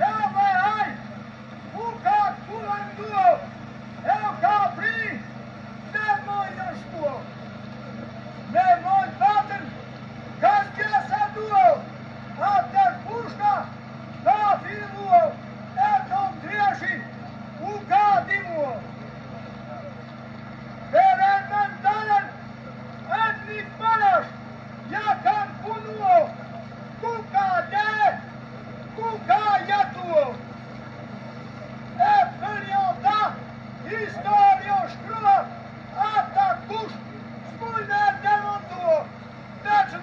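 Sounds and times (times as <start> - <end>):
man chanting a lament: 0.0 - 1.0, 1.7 - 5.3, 10.4 - 18.8, 20.9 - 22.4, 29.0 - 30.4
steady low hum: 0.0 - 40.0.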